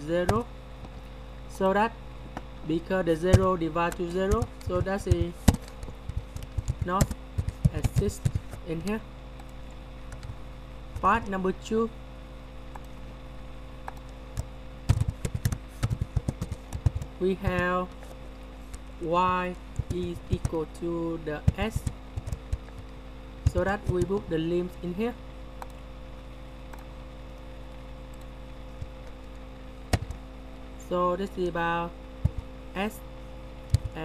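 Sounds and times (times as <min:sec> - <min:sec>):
steady electrical hum: 0:00.0 - 0:34.0
keyboard keystroke clicks: 0:29.9 - 0:30.2.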